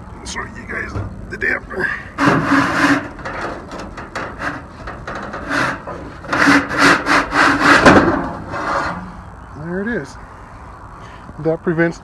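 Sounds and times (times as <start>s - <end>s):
sheet metal scraping against metal: 2.1s - 9.2s.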